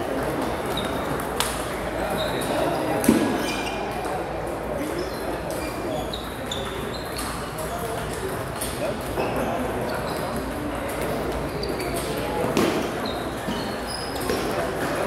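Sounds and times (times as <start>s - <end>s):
table tennis balls clicking: 6.2s - 9.2s.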